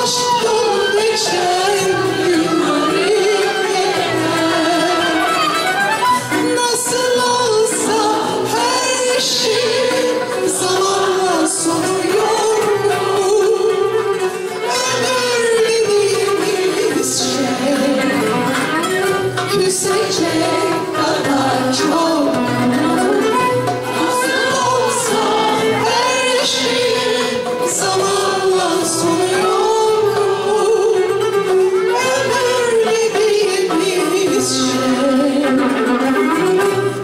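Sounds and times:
clarinet: 0:00.0 - 0:10.3, 0:26.8 - 0:37.0
woman singing: 0:00.0 - 0:18.6, 0:19.3 - 0:37.0
violin: 0:00.0 - 0:37.0.

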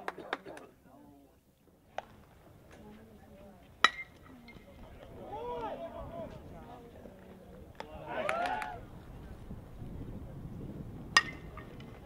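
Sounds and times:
faint crowd voices: 0:00.0 - 0:12.0
metal bat hitting ball: 0:03.8 - 0:04.2, 0:11.2 - 0:11.7.

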